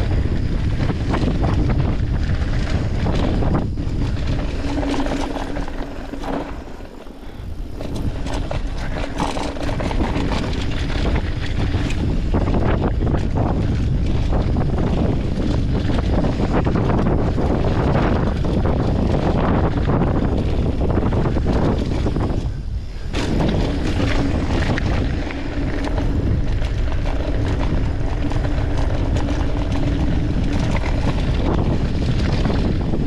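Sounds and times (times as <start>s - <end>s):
bike knocks and rattles: 0.0s - 33.0s
tyre roar on dirt: 0.0s - 33.0s
wind buffeting microphone: 0.0s - 33.0s.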